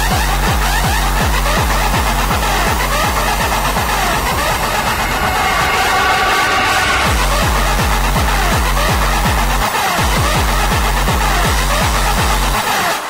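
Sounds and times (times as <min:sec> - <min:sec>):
distorted kick drum pounding: 0:00.0 - 0:04.3
held synth chord: 0:01.0 - 0:08.7
synth stabs: 0:01.0 - 0:08.7.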